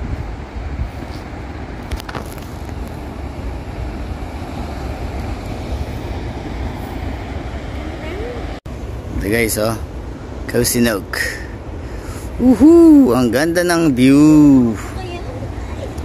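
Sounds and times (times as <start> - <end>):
wind rumbling on microphone: 0.0 - 10.5
surf breaking on rocky shore: 0.0 - 16.0.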